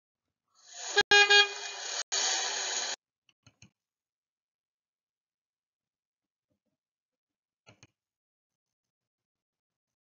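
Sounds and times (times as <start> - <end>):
car horn double honk: 1.0 - 1.8.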